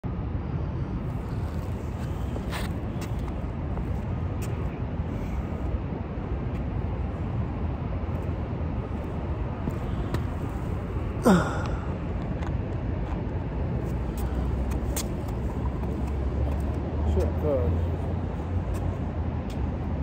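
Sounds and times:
low outdoor rumble: 0.0 - 20.0
shoes tapping on concrete: 13.8 - 16.8.

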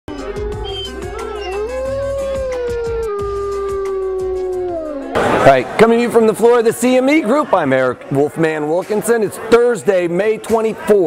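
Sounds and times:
wolf howling: 0.1 - 5.2.

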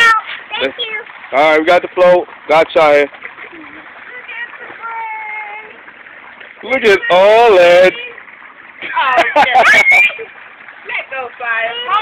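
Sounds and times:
pool water sloshing: 0.0 - 12.0.

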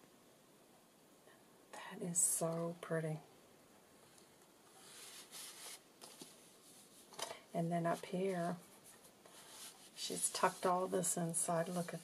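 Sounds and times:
paper rustling: 4.8 - 7.3.

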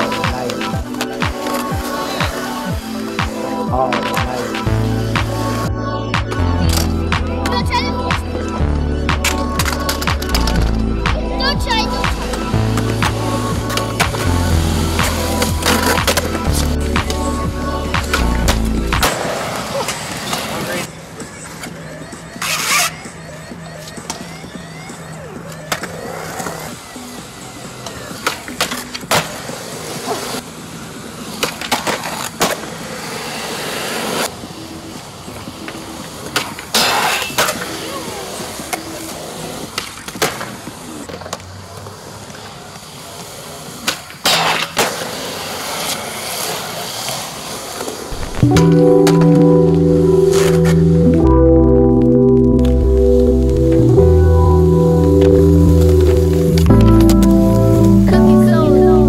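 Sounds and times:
music: 0.0 - 32.6, 48.1 - 59.0
skateboard wheels rolling on concrete: 0.0 - 59.0
skateboard pops and landings: 18.0 - 20.7, 27.9 - 30.3, 31.4 - 32.8, 39.7 - 41.5, 43.8 - 49.3.

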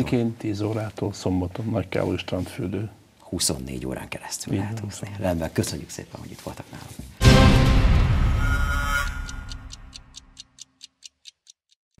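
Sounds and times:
theme music tail: 7.2 - 10.2
sharp high clock ticks: 7.2 - 12.0.

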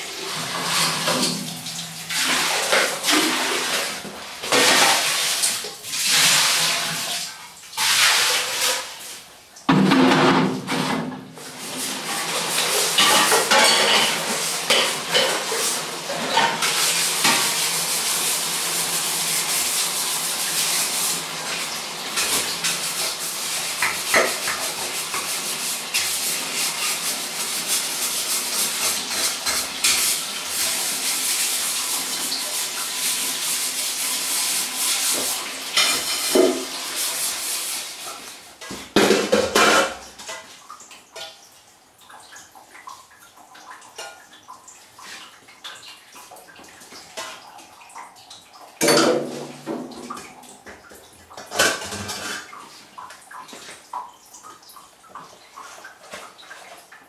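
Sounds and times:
scrubbing metal jugs: 0.0 - 40.6, 48.8 - 54.0
water running and splashing: 0.0 - 57.0
aluminium vessels clanking: 12.9 - 15.5.

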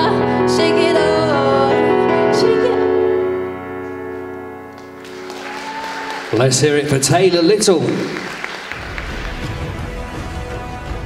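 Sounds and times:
pop backing track chord: 0.0 - 5.3.

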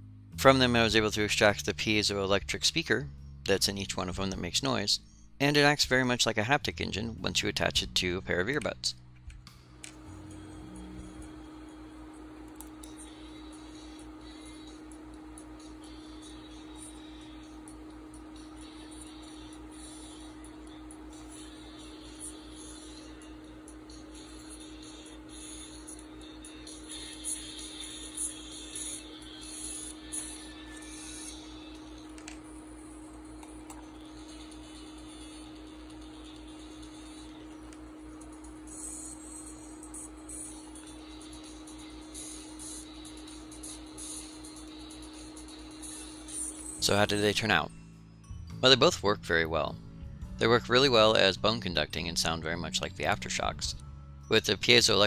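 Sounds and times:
low electrical hum: 0.0 - 55.0.

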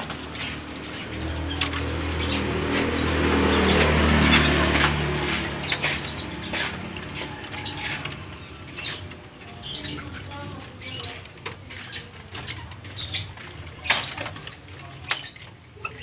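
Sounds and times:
fowl pecking and scratching: 0.0 - 16.0.

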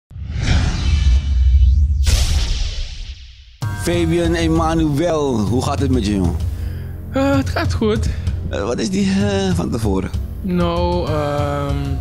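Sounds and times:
whoosh: 0.1 - 3.6
sharp hit: 0.1 - 5.0.

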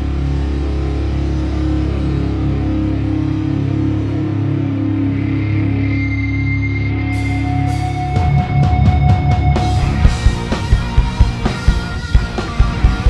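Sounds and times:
rock band sustained chord: 0.0 - 13.0
thin high tone: 5.0 - 10.0.

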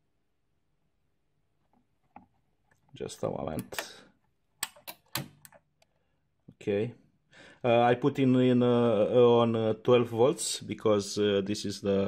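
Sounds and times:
sharp switch clicks: 4.6 - 5.6.

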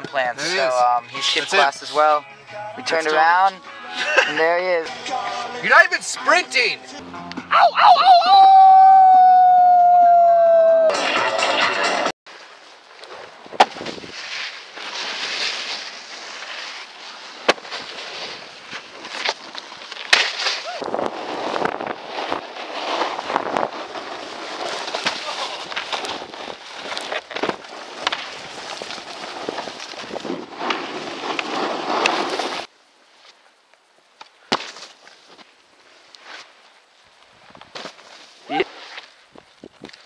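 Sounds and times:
man yelling: 5.6 - 6.8, 7.5 - 10.9
snowboards scraping on snow: 12.3 - 33.3.

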